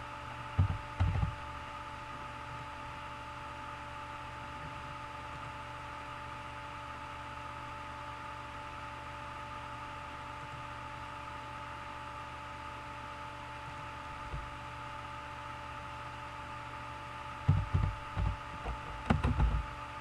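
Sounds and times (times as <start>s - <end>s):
background hum and hiss: 0.0s - 20.0s.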